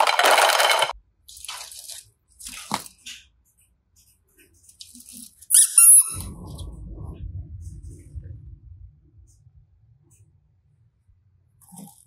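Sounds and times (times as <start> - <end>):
rustling handling noise: 0.1 - 5.6
rubber squeeze toy squeaking: 5.5 - 6.2.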